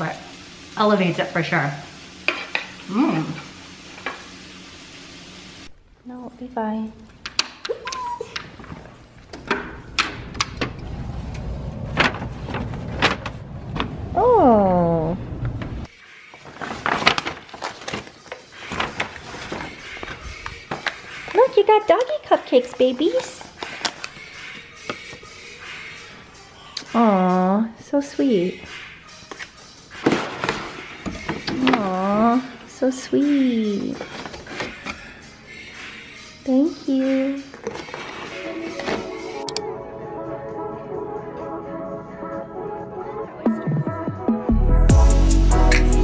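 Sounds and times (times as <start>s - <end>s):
cardboard box crackling and rustling: 16.5s - 21.0s.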